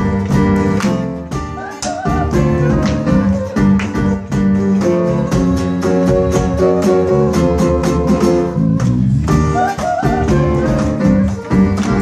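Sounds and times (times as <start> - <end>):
electric bass: 0.0 - 12.0
live band playing disco: 0.0 - 12.0.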